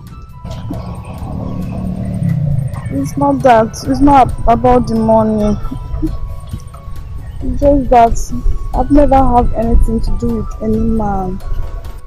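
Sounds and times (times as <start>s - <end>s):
low rumble: 0.0s - 11.7s.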